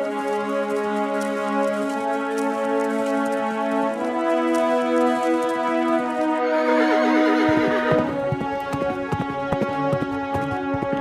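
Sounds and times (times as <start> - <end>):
background music: 0.0 - 11.0
galloping hoofbeats: 0.0 - 11.0.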